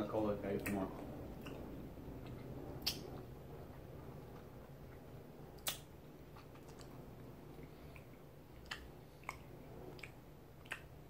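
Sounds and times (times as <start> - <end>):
faint room hum: 0.0 - 11.0
sharp mouth clicks: 5.6 - 6.9, 7.9 - 10.9.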